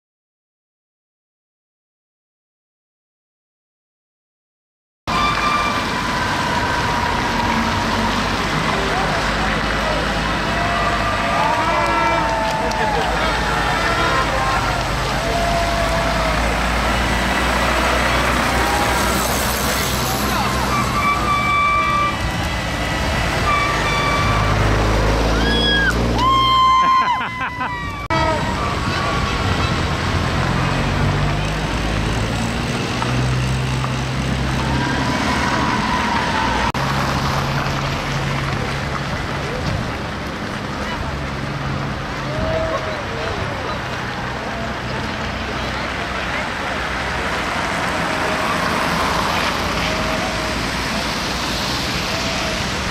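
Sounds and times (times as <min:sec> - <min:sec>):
crowd voices and shouts: 0:05.1 - 0:32.0, 0:34.4 - 0:37.0, 0:38.4 - 0:52.9
trucks engine and road noise: 0:05.1 - 0:52.9.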